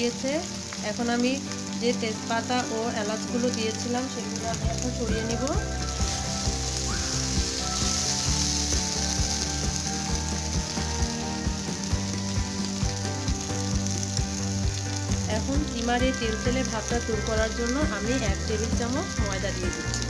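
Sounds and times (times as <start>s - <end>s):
meat sizzling in a frying pan: 0.0s - 20.0s.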